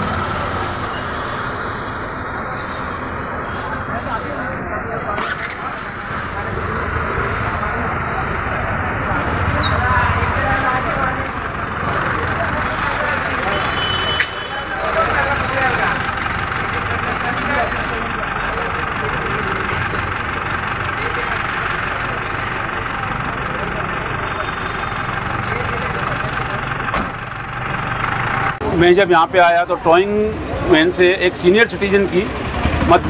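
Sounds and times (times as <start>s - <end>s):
crowd talking: 0.0s - 33.0s
street traffic noise: 0.0s - 33.0s
vehicle engine idling: 0.0s - 33.0s.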